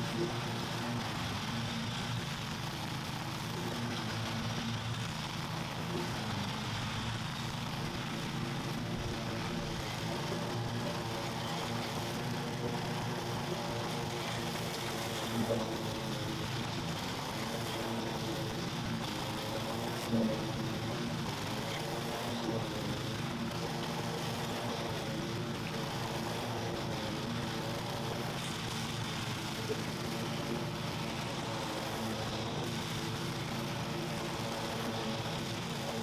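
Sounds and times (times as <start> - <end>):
lawn mower engine running: 0.0 - 36.0.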